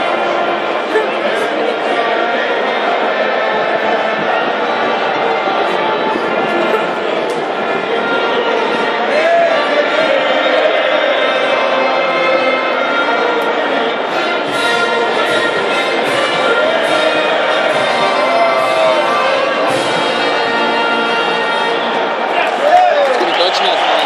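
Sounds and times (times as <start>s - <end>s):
crowd singing along: 0.0s - 24.0s
orchestral anthem over loudspeakers: 0.0s - 24.0s.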